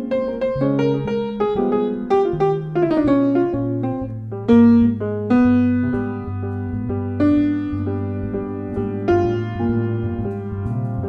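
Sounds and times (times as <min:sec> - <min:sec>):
jazz trio playing slow ballad: 0:00.0 - 0:11.0
piano quick melodic runs: 0:00.0 - 0:11.0
sustained electric bass notes: 0:00.0 - 0:11.0.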